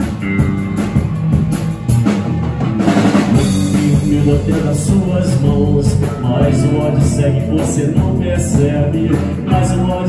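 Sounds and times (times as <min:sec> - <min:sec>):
bass: 0:00.0 - 0:10.0
drum kit beat: 0:00.0 - 0:10.0
electric guitar: 0:00.0 - 0:10.0
keyboard: 0:00.0 - 0:10.0.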